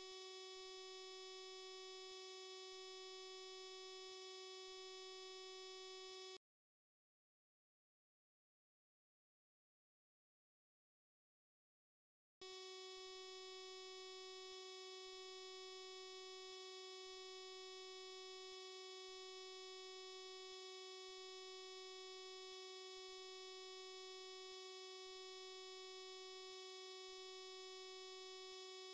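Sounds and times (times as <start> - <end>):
faint buzzy electronic tone: 0.0 - 6.4, 12.4 - 28.9.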